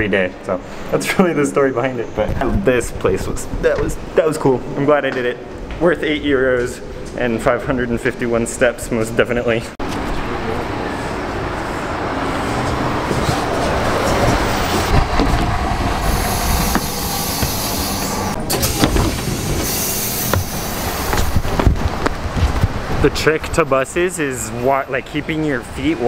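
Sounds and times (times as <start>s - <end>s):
street traffic: 0.0s - 5.9s, 6.6s - 26.0s
bus engine rumbling: 9.7s - 26.0s.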